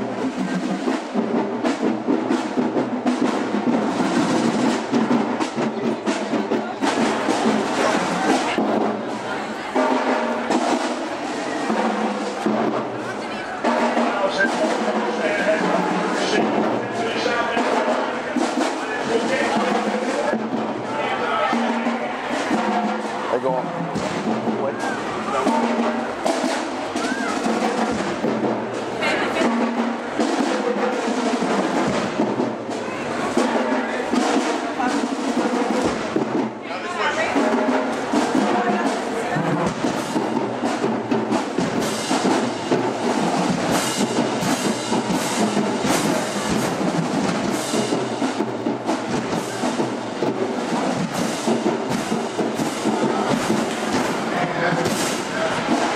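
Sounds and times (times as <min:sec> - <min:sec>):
marching drumline: 0:00.0 - 0:55.9
people's voices: 0:00.0 - 0:55.9.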